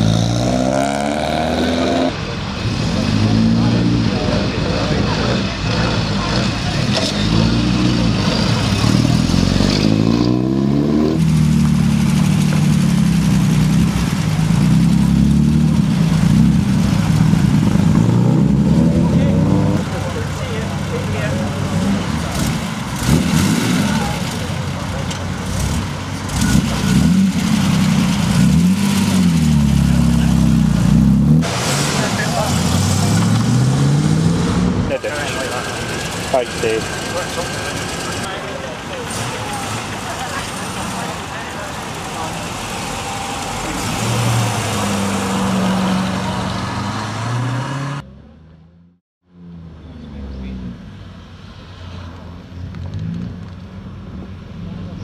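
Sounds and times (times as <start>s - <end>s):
sports car engines revving: 0.0s - 55.0s.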